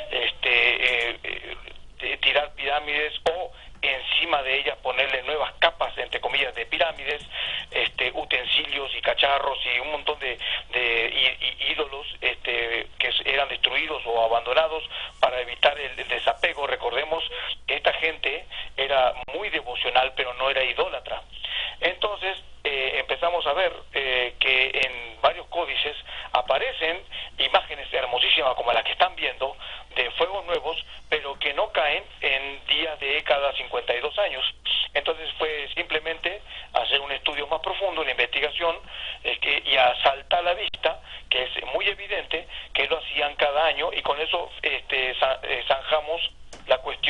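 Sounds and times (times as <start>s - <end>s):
person talking over phone line: 0.0s - 47.0s.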